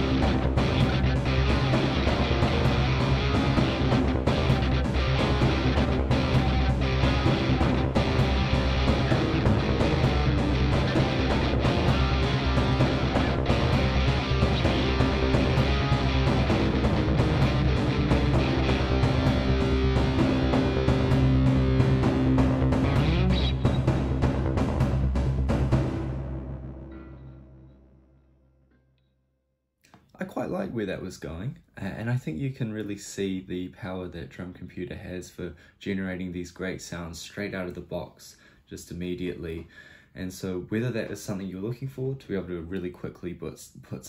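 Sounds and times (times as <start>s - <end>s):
guitar riffs: 0.0s - 24.8s
looping cinematic drum pattern: 0.0s - 26.5s.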